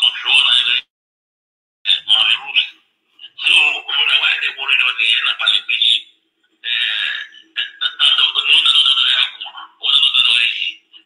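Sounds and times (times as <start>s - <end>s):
tinny voice talking: 1.9s - 11.0s.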